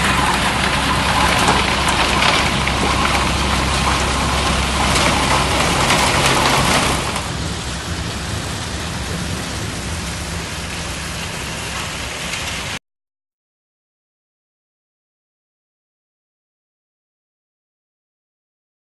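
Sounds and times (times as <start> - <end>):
low machine hum: 0.0 - 12.8
rushing noise of crushing plant: 0.0 - 12.8.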